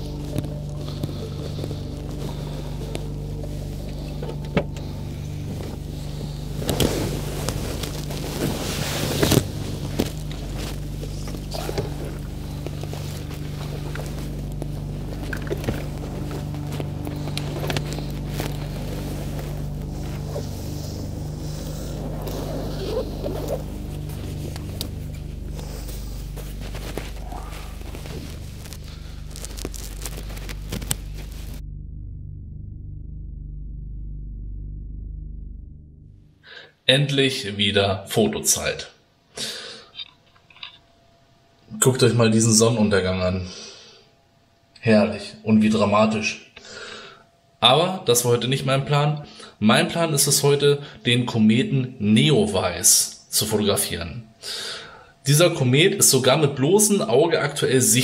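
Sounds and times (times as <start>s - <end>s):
ambient music drone: 0.0s - 36.6s.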